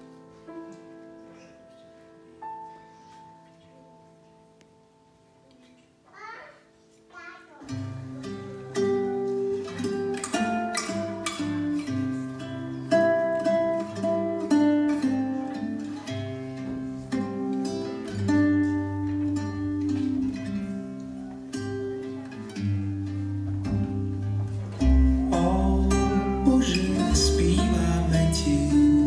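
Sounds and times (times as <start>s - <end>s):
grand piano playing: 7.9s - 29.0s.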